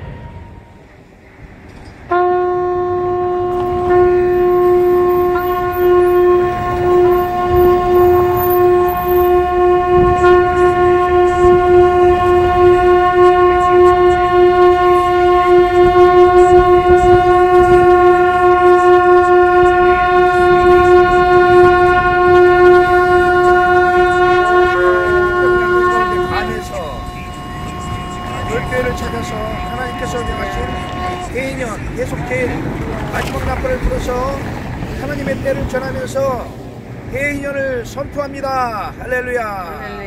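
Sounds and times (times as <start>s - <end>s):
shofar long blast: 2.1s - 31.4s.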